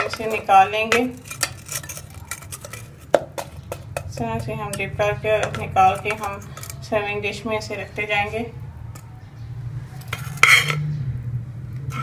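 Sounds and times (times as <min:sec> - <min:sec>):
metal tongs clinking on cookware: 0:00.0 - 0:07.0, 0:10.0 - 0:10.9.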